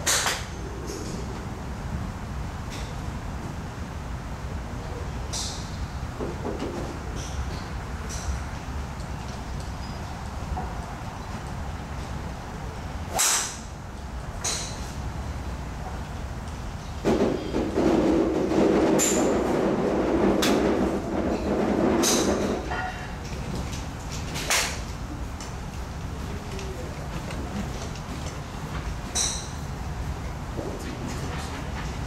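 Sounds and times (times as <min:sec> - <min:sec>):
golf club striking ball: 0:13.1 - 0:13.6.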